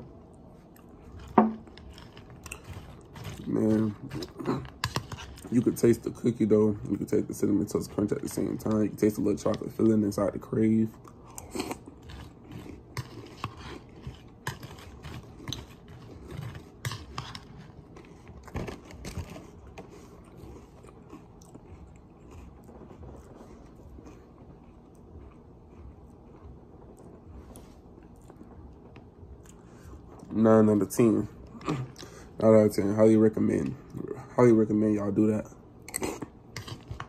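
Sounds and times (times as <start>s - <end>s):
chewing crunchy cereal: 0.1s - 34.2s, 35.8s - 37.0s.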